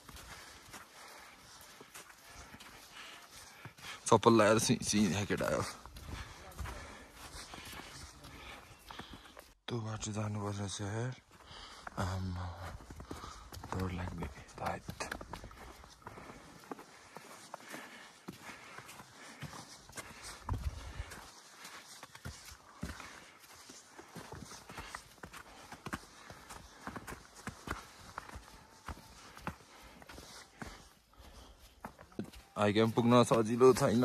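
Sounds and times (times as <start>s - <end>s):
footsteps crunching in snow: 0.0s - 9.6s, 10.4s - 34.0s.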